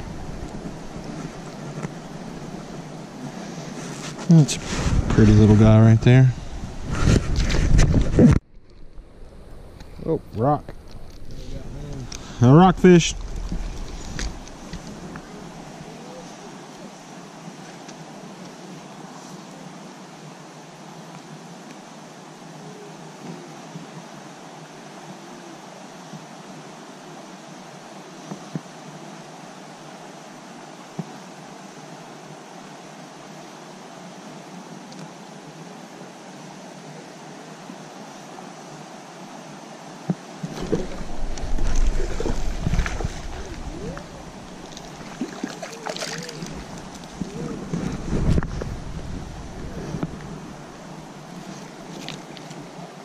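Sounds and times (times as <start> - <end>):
creek rushing: 0.0 - 53.0
fish splashing at surface: 40.5 - 48.0.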